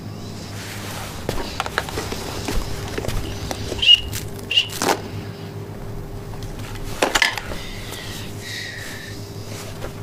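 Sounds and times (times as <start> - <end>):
rustling: 0.3 - 10.0.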